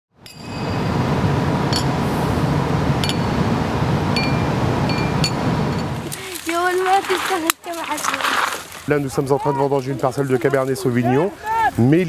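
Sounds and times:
outdoor background noise: 0.1s - 12.0s
ringing metallic clinks: 0.2s - 0.9s.

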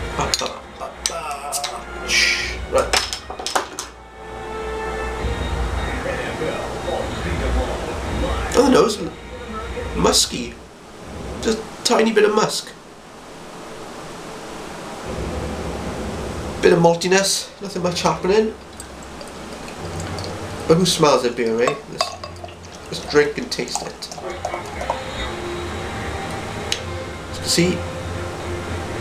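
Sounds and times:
room and microphone hiss: 0.0s - 29.0s
beer pouring into glass: 17.6s - 25.9s.

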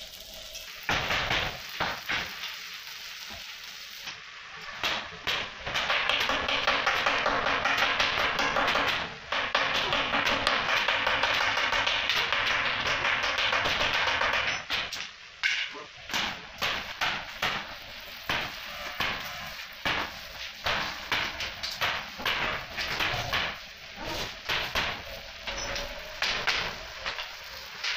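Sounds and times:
welding arc crackling hiss: 0.0s - 27.9s.

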